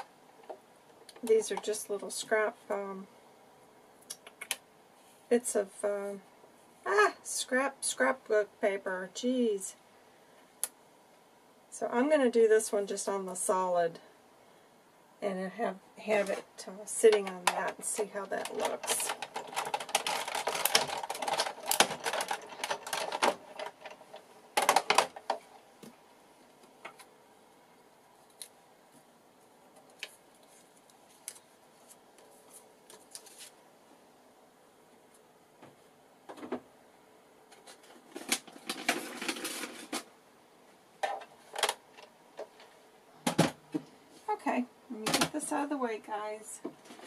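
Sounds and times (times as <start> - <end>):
plastic plates and paper clattering: 17.1 - 25.6, 37.5 - 40.1.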